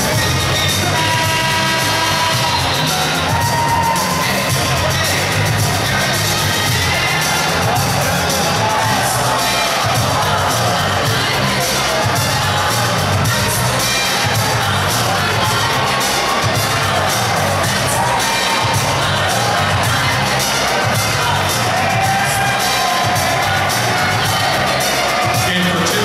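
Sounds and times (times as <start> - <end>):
crowd cheering and shouting: 0.0 - 26.0
music with bass beat over loudspeakers: 0.0 - 26.0.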